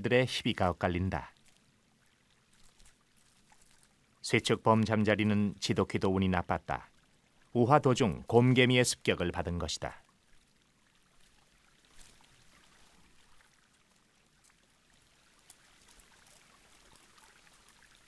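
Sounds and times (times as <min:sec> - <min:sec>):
faint steady hiss: 0:00.0 - 0:18.0
faint ticks: 0:10.0 - 0:18.0.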